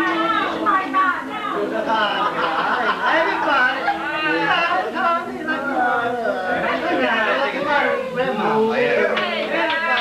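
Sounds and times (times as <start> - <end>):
people chattering at party: 0.0 - 10.0.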